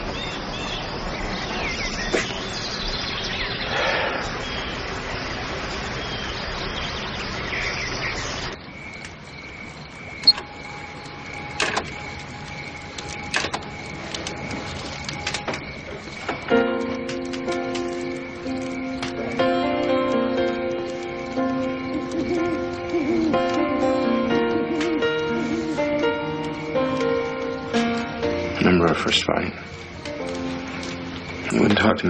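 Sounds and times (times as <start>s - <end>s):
woodland hiss: 0.0s - 32.0s
soft music: 10.2s - 32.0s.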